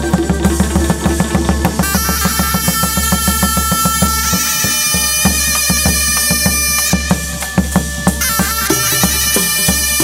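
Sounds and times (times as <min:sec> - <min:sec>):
drum and clappers beat: 0:00.0 - 0:10.0
high held melody line: 0:00.0 - 0:10.0.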